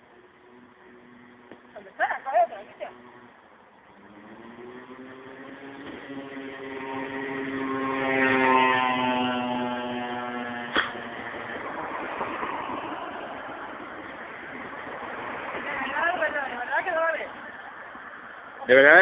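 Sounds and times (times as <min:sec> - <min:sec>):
passing vehicle engine hum: 0:00.0 - 0:19.0
sharp knock: 0:10.7 - 0:11.0.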